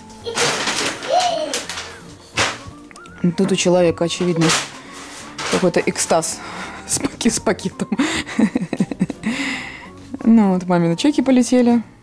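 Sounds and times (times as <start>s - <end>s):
shopping bag rustling: 0.2s - 7.5s.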